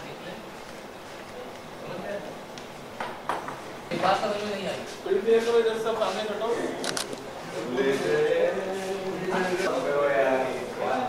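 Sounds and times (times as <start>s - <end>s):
low background voices: 3.6s - 11.0s.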